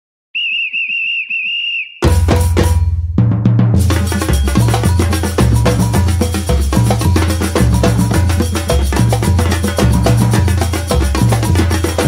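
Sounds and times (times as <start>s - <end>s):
pea whistle blasts: 0.3s - 2.1s.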